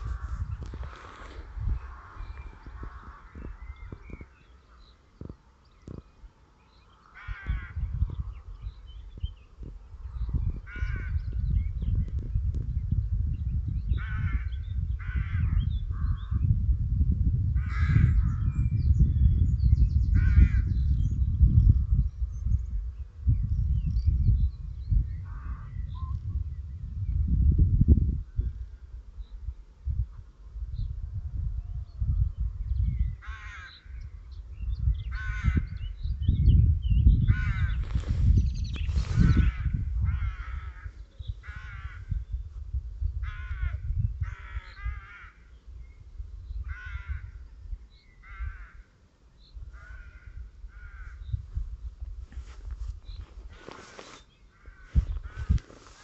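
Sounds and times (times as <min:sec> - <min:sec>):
birds calling: 0:00.0 - 0:12.3, 0:32.8 - 0:56.0
wind buffeting microphone: 0:00.0 - 0:56.0.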